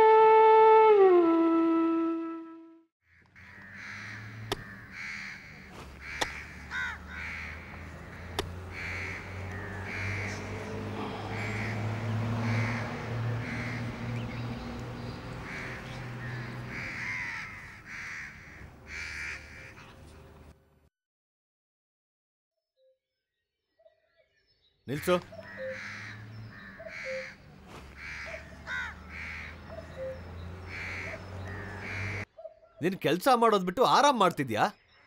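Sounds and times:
crows cawing: 3.1 - 19.9, 25.0 - 32.3.

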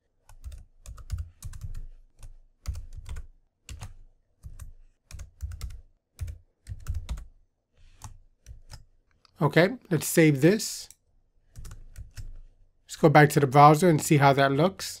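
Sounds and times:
computer keyboard typing: 0.2 - 7.3, 7.9 - 8.9, 10.9 - 12.4.

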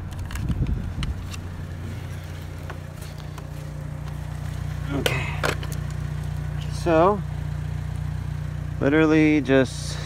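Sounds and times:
inflator hose clicks and rustles: 0.0 - 6.3
car engine idling: 0.0 - 10.0.

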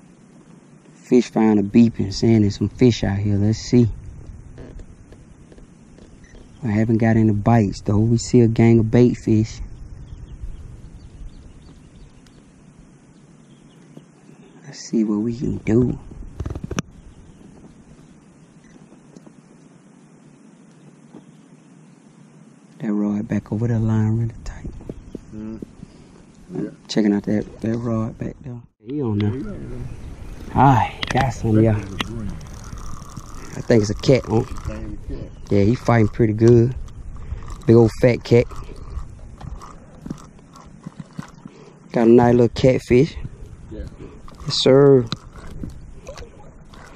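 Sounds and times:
low wind noise on microphone: 0.0 - 46.9
microphone handling bumps: 2.6 - 8.2, 15.6 - 19.5, 24.1 - 28.4
fishing reel clicks and knocks: 31.0 - 34.8, 35.4 - 41.5, 44.2 - 46.9.

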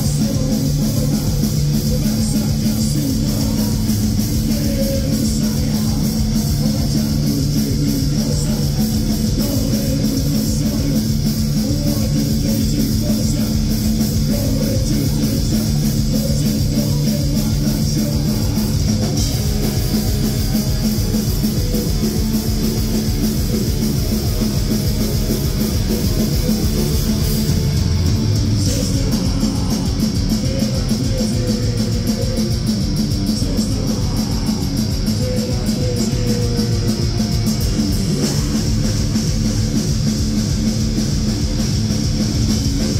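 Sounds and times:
distorted electric guitars: 0.0 - 42.9
drum kit: 0.0 - 42.9.

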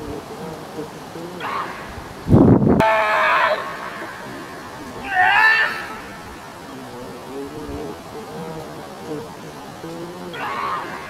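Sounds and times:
high wavering cry: 1.3 - 2.1, 2.8 - 11.0.

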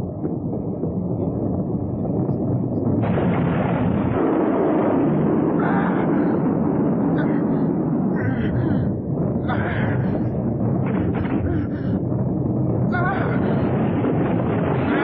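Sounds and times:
rumbling explosion sound effect: 0.0 - 15.0.

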